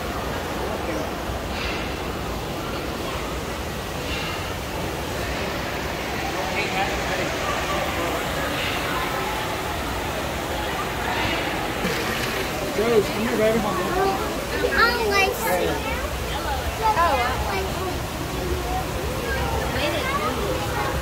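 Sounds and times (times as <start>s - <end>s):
chatter of many visitors: 0.0s - 21.0s
steady rushing background noise: 0.0s - 21.0s.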